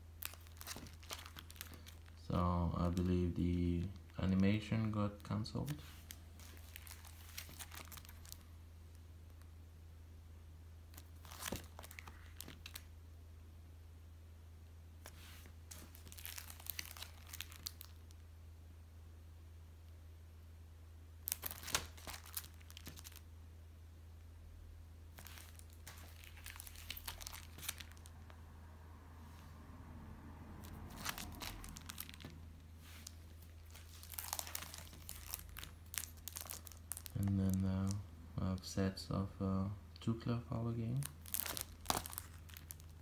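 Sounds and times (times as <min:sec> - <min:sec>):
plastic folder crinkling: 0:00.2 - 0:08.5, 0:10.9 - 0:12.9, 0:15.0 - 0:18.1, 0:21.3 - 0:23.2, 0:25.1 - 0:28.1, 0:30.6 - 0:38.0, 0:41.0 - 0:43.0.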